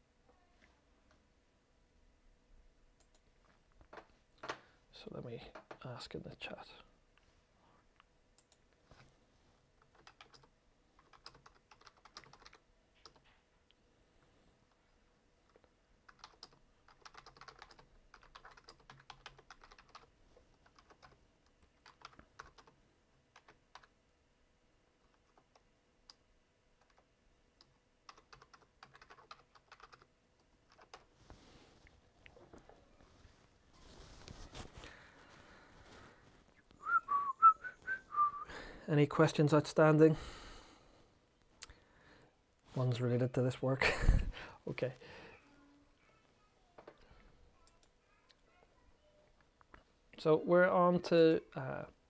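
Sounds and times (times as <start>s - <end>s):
computer keyboard typing: 9.8s - 13.3s, 15.5s - 24.0s, 26.8s - 31.1s
person whistling: 36.8s - 38.6s.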